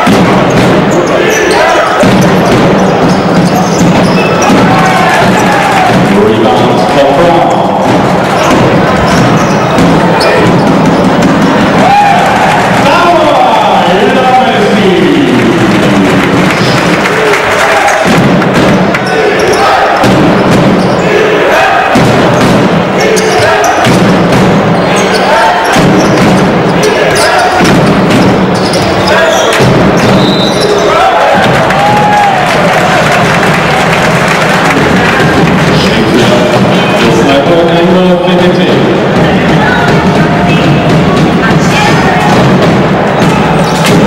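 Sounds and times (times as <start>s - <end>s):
basketball bouncing on court: 0.0s - 12.9s, 15.6s - 21.0s, 21.9s - 37.0s, 39.0s - 44.0s
crowd voices: 0.0s - 44.0s
music in hall: 0.0s - 44.0s.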